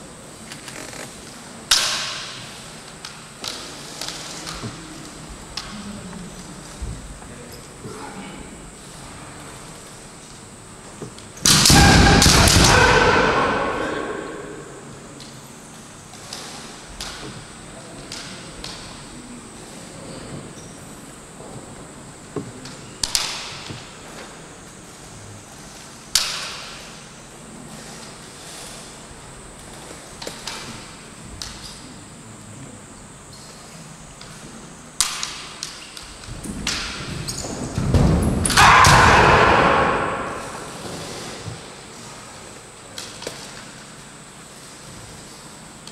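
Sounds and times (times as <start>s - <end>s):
loud shouts: 11.6s - 14.9s, 38.5s - 40.8s.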